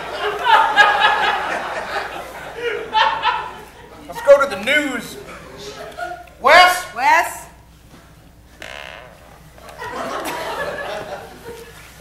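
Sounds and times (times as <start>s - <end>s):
audience laughter: 0.0s - 4.1s, 9.6s - 12.0s.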